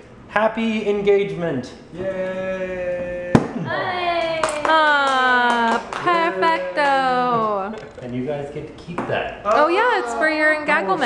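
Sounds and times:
hand claps: 0:04.2 - 0:07.8.

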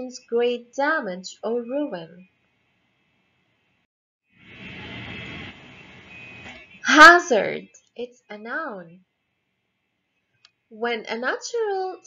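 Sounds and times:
woman speaking: 0:00.0 - 0:02.2, 0:06.9 - 0:07.7, 0:08.3 - 0:09.0, 0:10.8 - 0:12.0.

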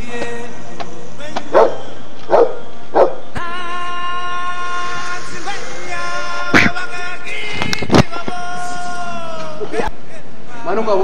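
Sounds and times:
faint background music: 0:00.0 - 0:11.0
dog barking: 0:01.5 - 0:03.2.

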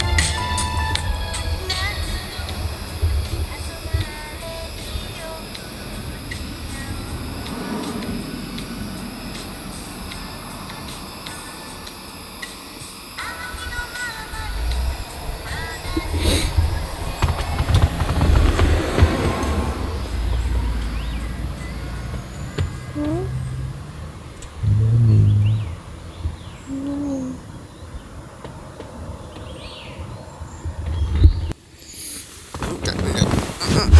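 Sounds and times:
heavy vehicle rumbling past: 0:00.0 - 0:12.2, 0:14.3 - 0:26.6
short low voice-like sound: 0:24.6 - 0:25.8.

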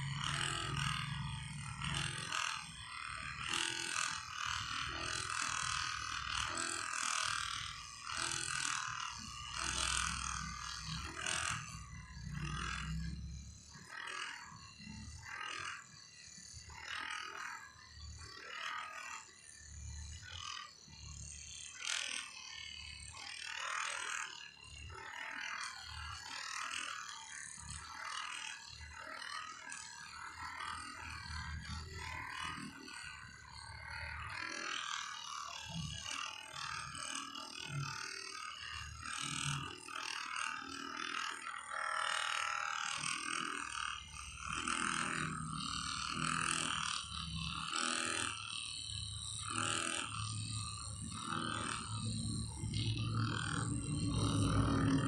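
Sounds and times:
massage gun buzzing: 0:00.0 - 0:55.0.

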